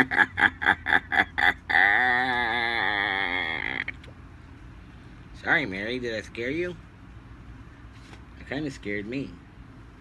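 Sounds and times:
man laughing: 0.0s - 3.9s
wavering vocal cry: 0.9s - 4.0s.

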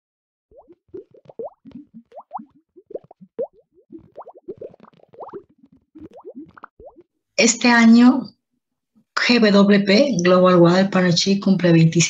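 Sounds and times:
water drop plop effects: 0.5s - 7.1s.

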